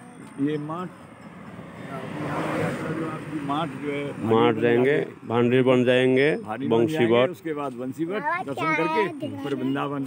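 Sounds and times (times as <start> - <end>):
vehicle engine and tyre noise: 0.0 - 8.1.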